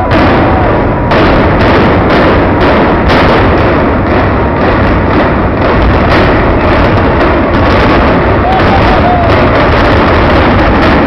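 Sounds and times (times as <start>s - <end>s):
demolition explosive blasts: 0.0s - 11.0s.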